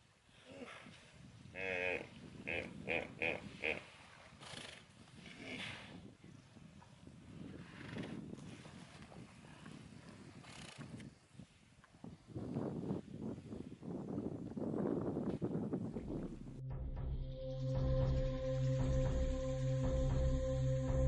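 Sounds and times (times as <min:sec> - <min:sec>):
hippos grunting: 0:01.6 - 0:03.9
music: 0:16.1 - 0:21.0.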